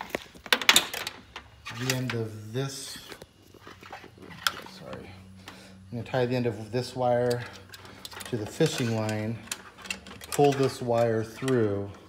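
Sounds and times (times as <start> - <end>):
light rattling clicks of wire: 7.1 - 12.0.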